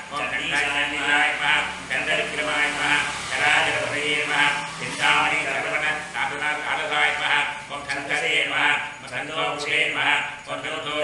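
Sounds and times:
man chanting mantras: 0.0s - 11.0s.

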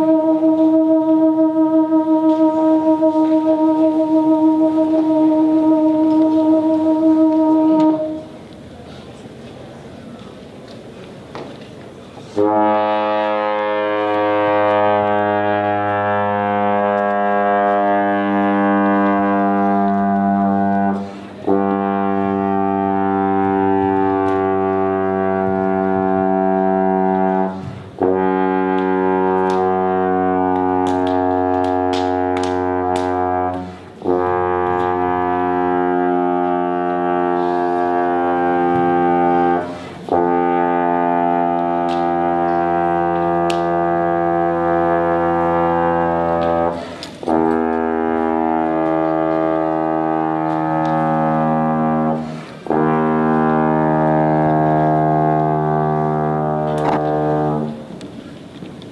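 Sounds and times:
trombone sustained notes: 0.0s - 8.4s, 12.3s - 58.2s.

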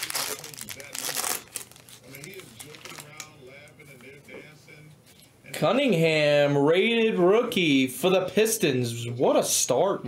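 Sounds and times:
shiny wrapper tearing and crinkling: 0.0s - 3.3s.

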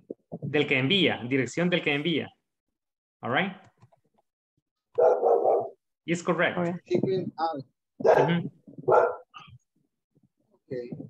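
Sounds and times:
dog barking: 5.0s - 5.8s, 8.0s - 9.4s.

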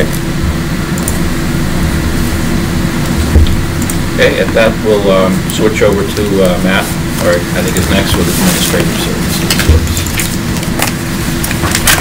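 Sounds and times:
steady low rumble: 0.0s - 12.0s
ventilation hum: 0.0s - 12.0s.

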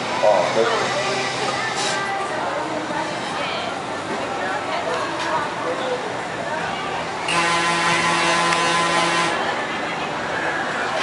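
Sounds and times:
warning horn with hiss: 7.3s - 9.4s.

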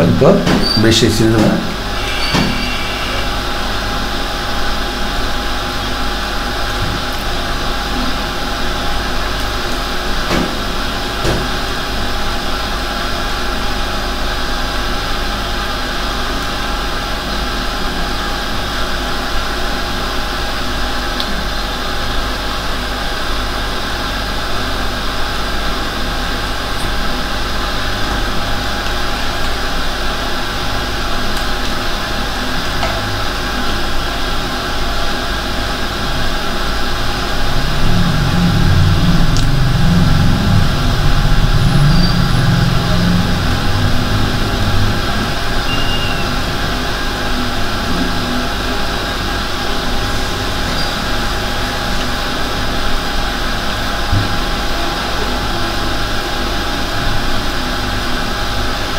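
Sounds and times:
steady hum and hiss: 0.0s - 58.9s.

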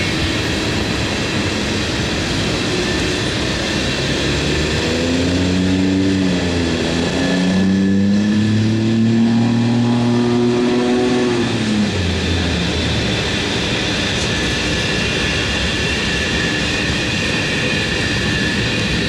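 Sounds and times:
droning engine hum: 0.0s - 19.0s.

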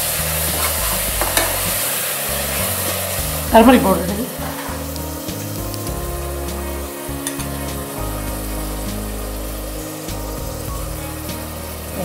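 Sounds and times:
food sizzling in a pot: 0.0s - 12.0s
metal spoon stirring and clicking: 0.4s - 3.2s.

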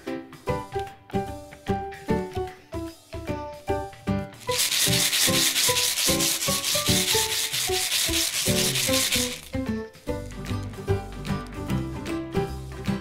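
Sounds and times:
background music: 0.0s - 13.0s
fingers rubbing plastic egg: 4.4s - 9.6s.

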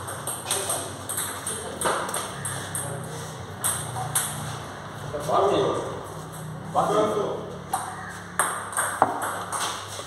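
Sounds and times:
table tennis balls clicking: 0.0s - 4.5s, 7.7s - 10.0s.

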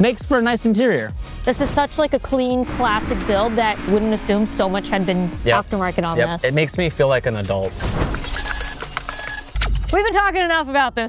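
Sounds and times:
noisy swoosh: 1.7s - 6.8s
deep low boom: 1.8s - 6.8s.

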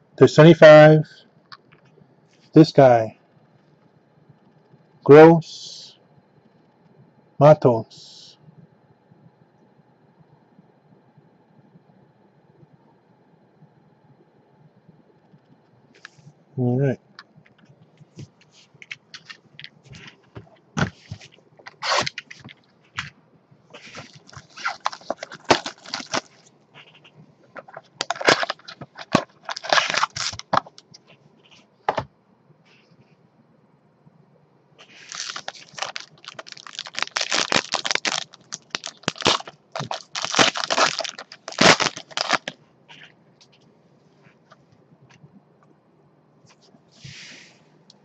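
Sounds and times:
plastic wrap crinkling: 17.5s - 23.2s, 23.8s - 31.1s, 34.8s - 43.6s
cardboard scraping: 19.2s - 23.1s, 23.8s - 26.9s.

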